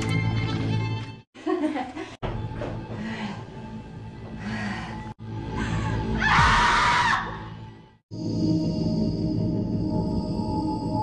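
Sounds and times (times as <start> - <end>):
dark film trailer score: 2.2 - 11.0
woman screaming: 6.1 - 7.4.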